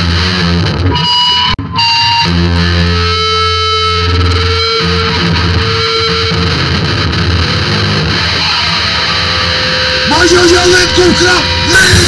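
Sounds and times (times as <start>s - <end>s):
distorted electric guitar and bass: 0.0s - 12.0s.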